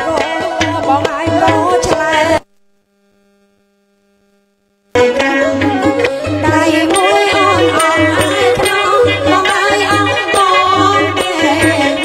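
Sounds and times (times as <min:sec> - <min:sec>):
band music with singing: 0:05.4 - 0:12.0.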